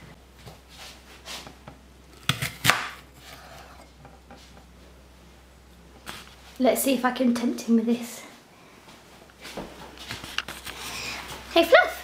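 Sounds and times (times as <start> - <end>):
knife cutting apple on hard surface: 2.2 - 4.4.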